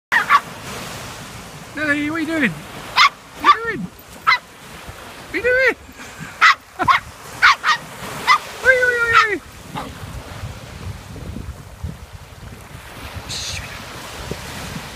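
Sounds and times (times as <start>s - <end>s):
small dog yapping: 0.1s - 0.5s, 2.9s - 4.5s, 6.4s - 10.0s
waves washing on shore: 0.1s - 14.9s
wind on microphone: 2.5s - 14.9s.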